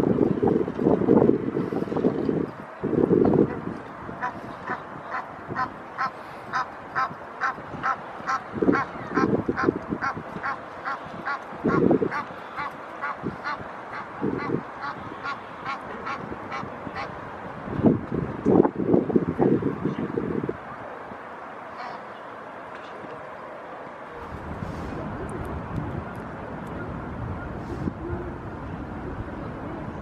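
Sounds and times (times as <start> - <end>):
wind gusts on microphone: 0.0 - 30.0.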